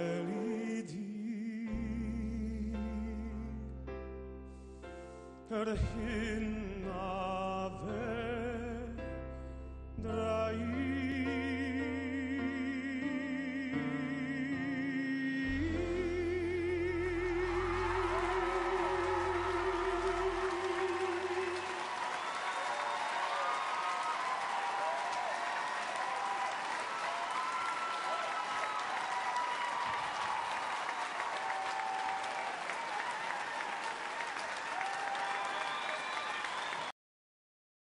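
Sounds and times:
man singing with vibrato: 0.0 - 3.7, 5.4 - 9.0, 10.0 - 21.9
audience applauding: 17.1 - 36.9.

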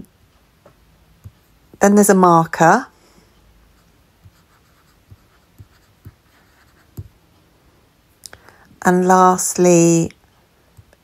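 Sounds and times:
stylus scratching on screen: 3.8 - 7.1.

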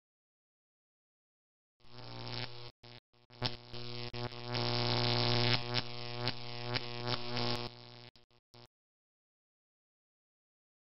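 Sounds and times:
neon sign electric hum: 1.8 - 8.7
sparking crackles: 1.8 - 8.7.

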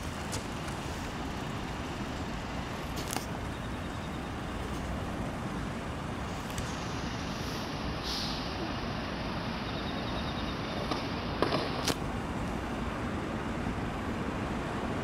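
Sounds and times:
distant road traffic hum: 0.0 - 15.0.

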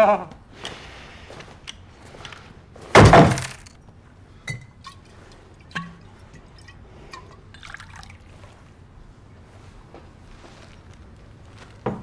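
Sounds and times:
objects crashing on a table: 2.9 - 3.8.

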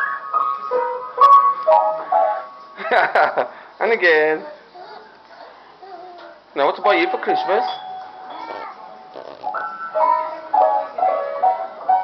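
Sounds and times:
upright piano notes: 0.0 - 4.8, 6.4 - 12.0.

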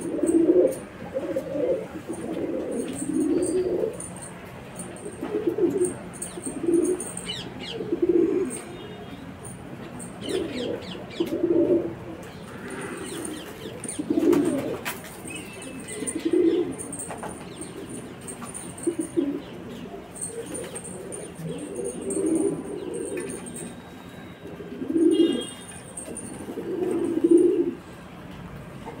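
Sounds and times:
pigeons cooing: 0.0 - 4.2, 5.0 - 8.7, 10.1 - 23.8, 24.4 - 27.8.

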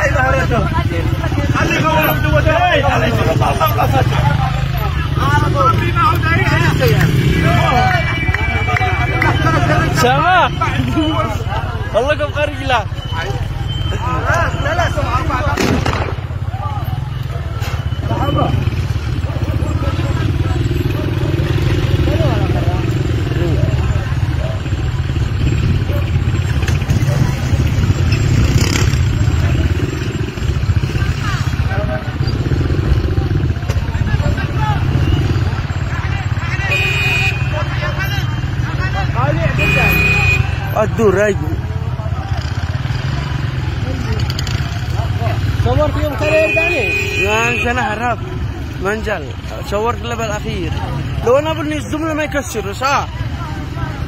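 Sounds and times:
engines rumbling in traffic: 0.0 - 54.0
onlookers talking: 0.0 - 54.0.

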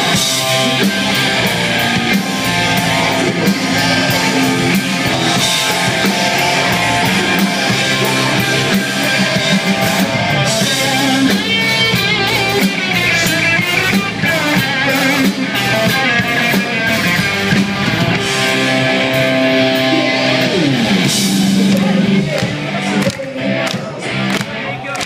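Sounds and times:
person singing: 0.0 - 17.3, 17.9 - 24.9
drum kit: 0.0 - 24.4
electric guitars: 0.0 - 25.0.

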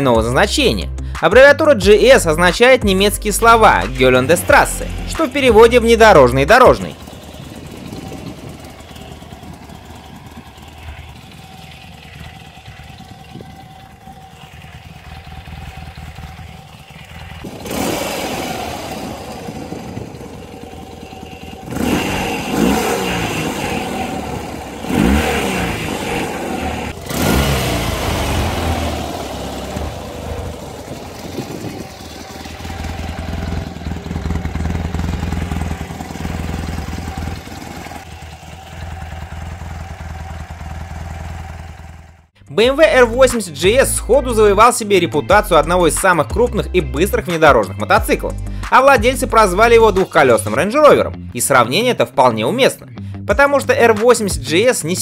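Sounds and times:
motorcycle engine idling and revving: 0.0 - 55.0.

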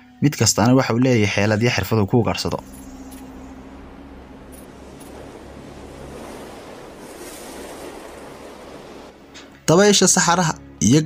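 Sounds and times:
wind rushing: 2.6 - 9.3.

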